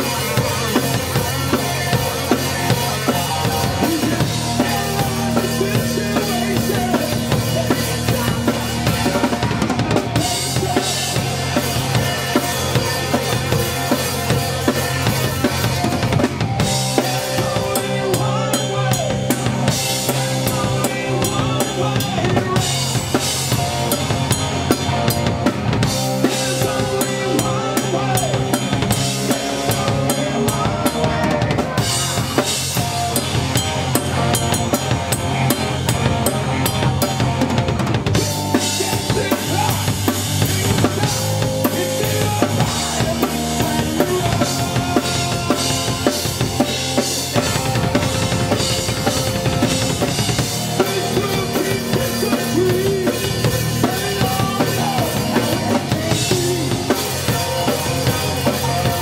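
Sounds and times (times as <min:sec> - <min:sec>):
drum kit beat with cymbals: 0:00.0 - 0:59.0
electric guitar: 0:00.0 - 0:59.0
rock band playing: 0:00.0 - 0:59.0.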